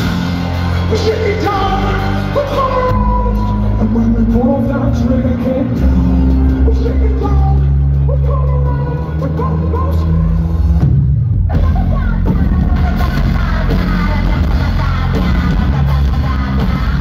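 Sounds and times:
live band playing rock music: 0.0 - 17.0
woman singing: 0.8 - 10.4, 11.5 - 17.0.

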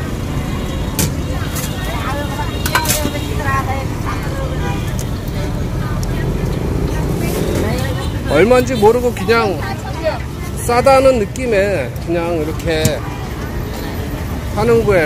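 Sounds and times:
faint background voices: 0.0 - 15.0
road traffic rumble: 0.0 - 15.0.

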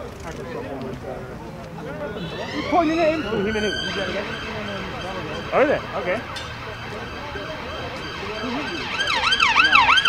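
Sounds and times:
siren yelping: 2.2 - 10.0.

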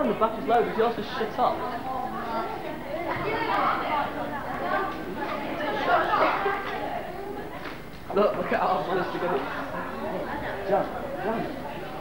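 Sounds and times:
several people talking at once: 0.0 - 12.0.

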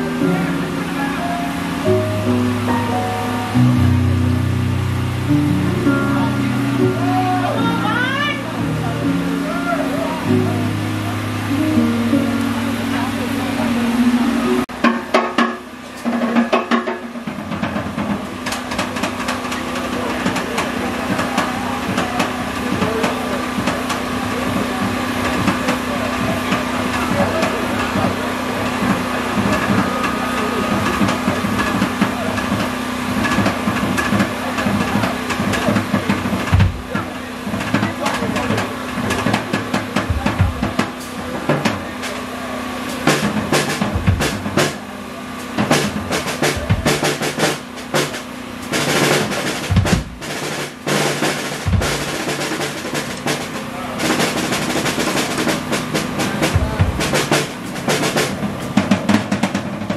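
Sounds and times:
band holding a chord: 0.0 - 16.2, 17.0 - 59.9
drum kit fills: 0.0 - 59.9.

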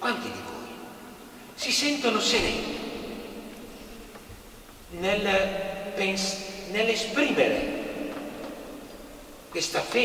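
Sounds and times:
man's amplified speech: 0.0 - 4.1, 4.8 - 8.8, 9.4 - 10.0.

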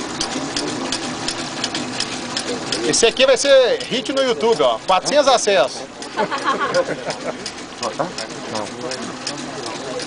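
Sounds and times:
rapid mechanical clatter: 0.0 - 10.0.

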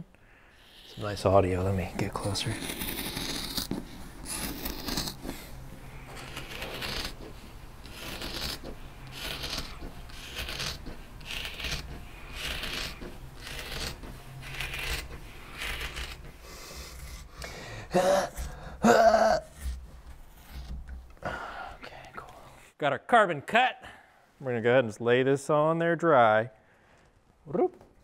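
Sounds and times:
shears snipping cloth: 0.6 - 17.5.

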